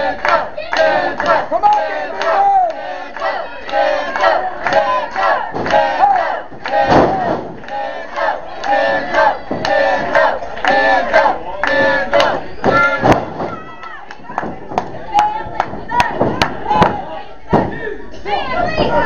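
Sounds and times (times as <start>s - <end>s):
crowd yelling and shouting: 0.0s - 19.0s.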